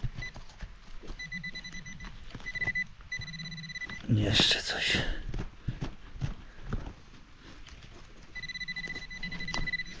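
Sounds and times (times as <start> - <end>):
pinpointer high-pitched tone: 1.1 - 4.1, 8.3 - 10.0.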